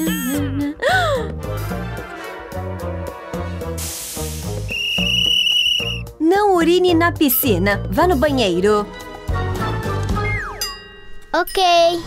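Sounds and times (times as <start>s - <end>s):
background music with steady beat: 0.0s - 11.0s
short hiss: 3.8s - 4.7s
shrill plastic whistle blast: 4.6s - 6.1s.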